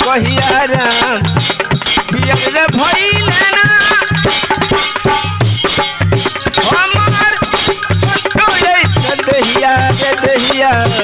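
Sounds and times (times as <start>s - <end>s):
dholak drum strokes: 0.0s - 11.0s
harmonium: 0.0s - 11.0s
kartal clappers clicking: 0.0s - 11.0s
man singing: 0.0s - 11.0s.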